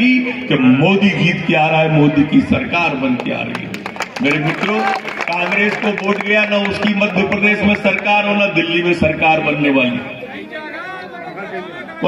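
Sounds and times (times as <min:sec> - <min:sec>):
amplified speaker talking: 0:00.0 - 0:12.0
audience chatter: 0:09.8 - 0:12.0.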